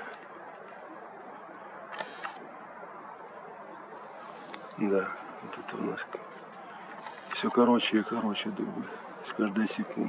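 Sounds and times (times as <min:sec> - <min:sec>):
faint steady hiss: 0:00.0 - 0:10.0
camera lens clicks: 0:01.9 - 0:02.4.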